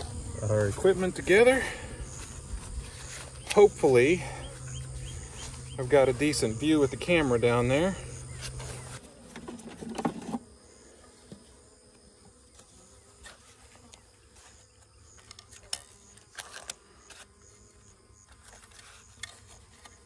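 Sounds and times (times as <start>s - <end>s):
bees buzzing: 0.0s - 20.0s.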